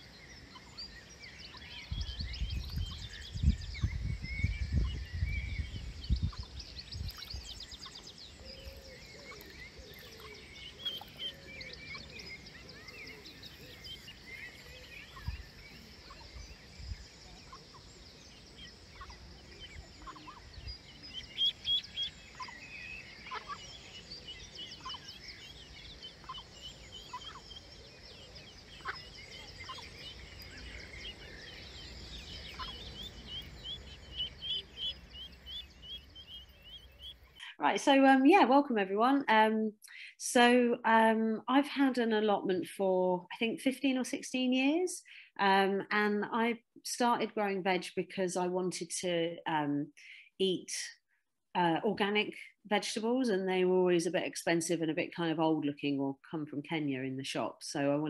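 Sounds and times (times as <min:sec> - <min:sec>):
small birds singing: 0:00.0 - 0:41.4
wind rumble on microphone: 0:01.5 - 0:08.9, 0:15.0 - 0:18.0.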